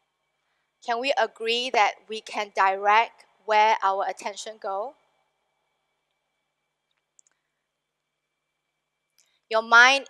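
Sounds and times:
faint clicks: 6.8 - 7.4.

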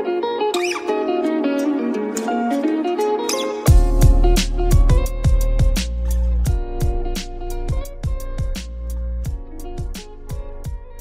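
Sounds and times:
background music melody: 0.0 - 11.0
high gliding squeak: 0.5 - 1.0, 3.2 - 3.7.

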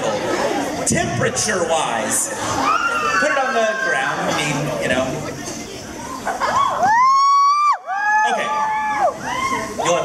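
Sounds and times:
crowd noise: 0.0 - 10.0
high screams overlapping: 2.5 - 4.3, 6.4 - 9.9.

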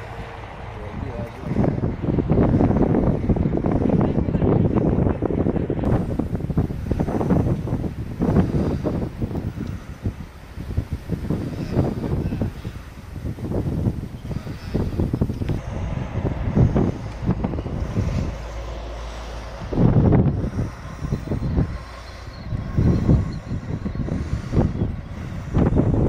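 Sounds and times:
wind buffeting microphone: 0.0 - 26.0.

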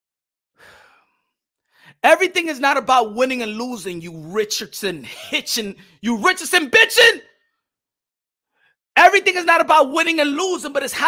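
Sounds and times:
quick breath in: 0.6 - 2.0.

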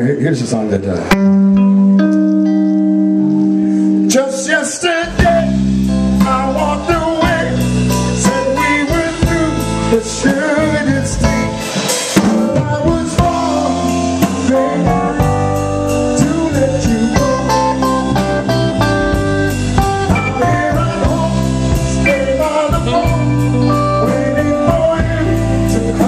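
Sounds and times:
electric bass: 0.9 - 26.0
electric guitar: 1.0 - 26.0
drum kit: 1.1 - 26.0
steady cymbal beat: 5.1 - 26.0.

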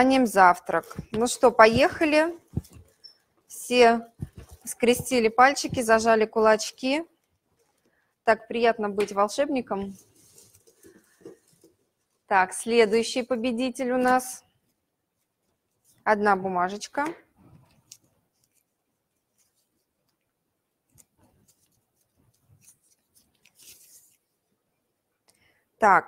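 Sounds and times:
paper crinkling and rustling: 0.6 - 3.0, 4.2 - 6.0, 9.8 - 12.2, 20.9 - 24.4.

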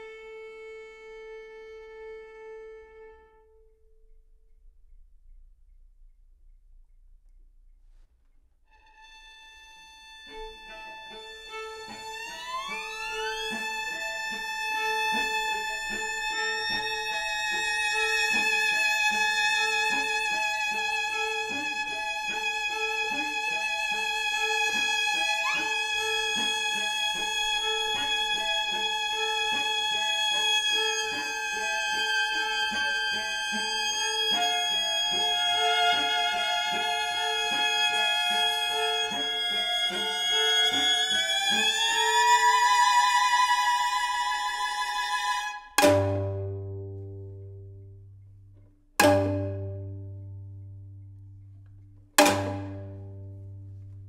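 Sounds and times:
high violin notes sliding upward: 9.0 - 46.4.

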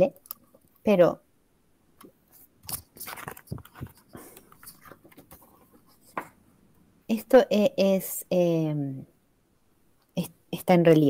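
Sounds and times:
book pages clicking and rustling: 2.3 - 6.4.

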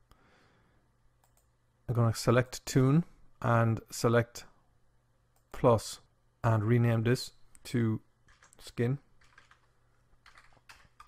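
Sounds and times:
computer keyboard typing: 8.3 - 11.0.

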